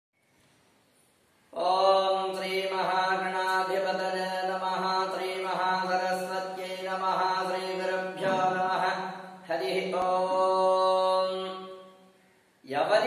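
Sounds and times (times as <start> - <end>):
person chanting: 1.6 - 11.9.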